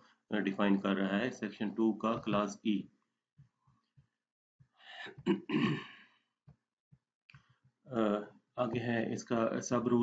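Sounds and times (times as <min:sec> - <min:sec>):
man clearing his throat: 0:05.0 - 0:06.0.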